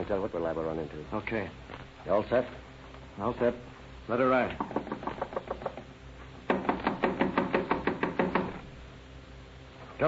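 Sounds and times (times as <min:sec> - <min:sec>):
knocking on a door: 0:04.6 - 0:08.7.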